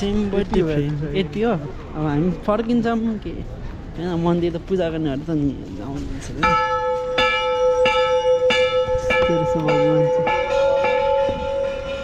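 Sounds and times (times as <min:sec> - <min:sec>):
large metal bell ringing: 0:06.4 - 0:12.0.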